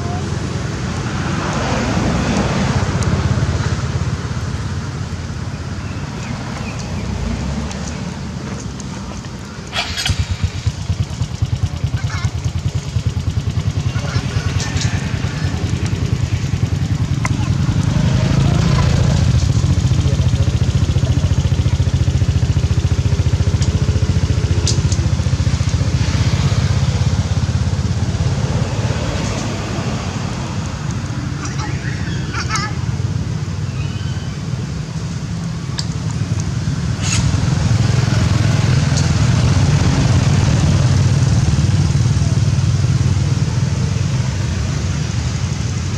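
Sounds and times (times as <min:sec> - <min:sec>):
engine running: 0:00.0 - 0:45.9.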